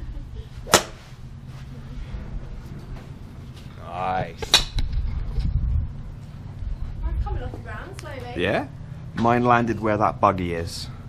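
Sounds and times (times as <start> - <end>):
golf club striking ball: 0.7 - 1.0, 4.4 - 4.9.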